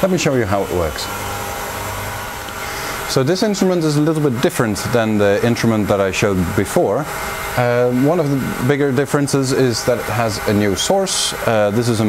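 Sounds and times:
mechanical hum of equipment: 0.0 - 12.0.

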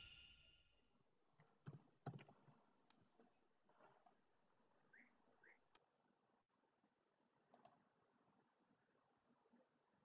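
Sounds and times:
faint clicks: 7.5 - 7.8.

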